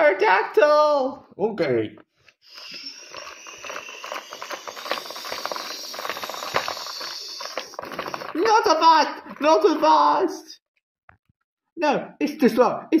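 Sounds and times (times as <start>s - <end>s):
toy spinning top whirring: 2.4s - 10.0s.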